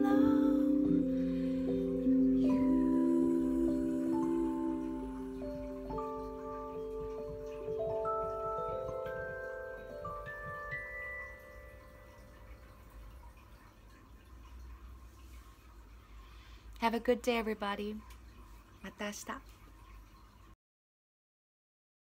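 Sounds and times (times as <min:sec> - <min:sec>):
slow piano ballad: 0:00.0 - 0:12.8.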